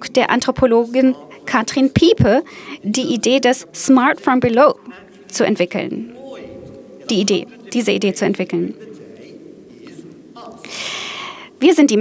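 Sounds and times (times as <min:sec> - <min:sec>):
hissing in-breath: 0:10.6 - 0:11.6.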